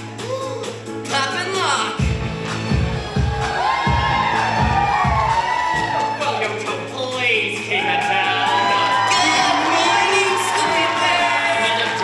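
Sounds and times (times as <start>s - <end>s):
pit band playing upbeat music: 0.0s - 12.0s.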